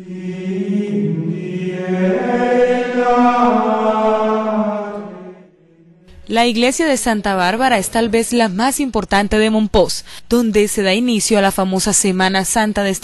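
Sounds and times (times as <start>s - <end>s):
voices chanting held notes: 0.0s - 6.0s.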